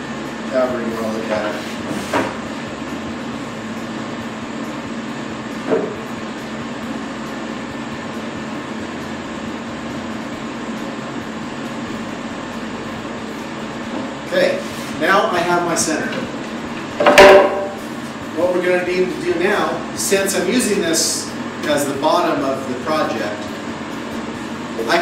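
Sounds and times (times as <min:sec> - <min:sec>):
air filtration unit running: 0:00.0 - 0:25.0
dust collector running: 0:00.0 - 0:25.0
short knock: 0:17.0 - 0:17.8.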